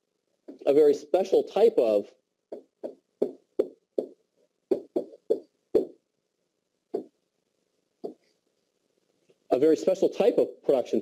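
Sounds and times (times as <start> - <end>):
pen tapping on whiteboard: 2.5 - 5.9.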